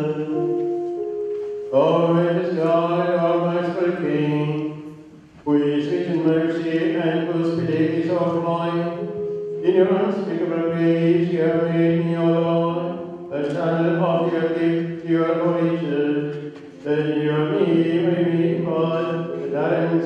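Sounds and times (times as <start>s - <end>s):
man chanting a prayer: 0.0s - 0.5s, 1.7s - 4.8s, 5.4s - 20.0s.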